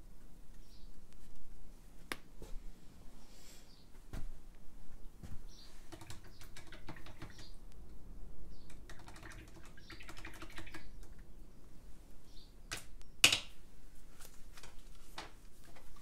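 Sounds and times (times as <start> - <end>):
keyboard typing clicks: 5.9 - 7.5.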